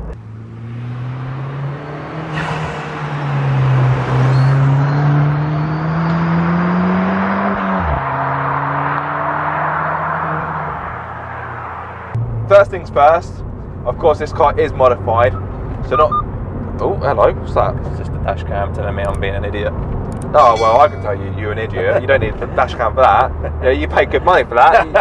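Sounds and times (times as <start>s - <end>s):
car driving past: 0.1s - 12.5s.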